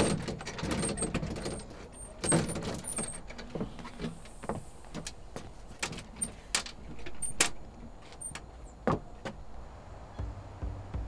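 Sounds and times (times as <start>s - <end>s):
door handle clicking and rattling: 0.0s - 3.6s, 5.8s - 7.7s.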